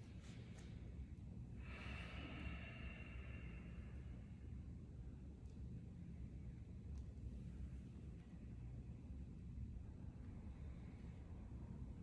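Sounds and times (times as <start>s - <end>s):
low room hum: 0.0s - 12.0s
person exhaling with a hiss: 1.6s - 3.8s.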